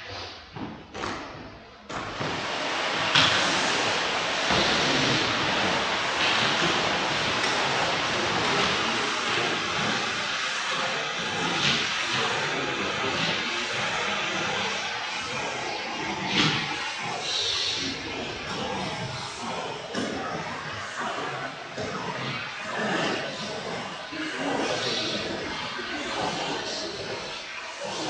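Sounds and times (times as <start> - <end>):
machine running with rushing hiss: 1.9 - 28.0.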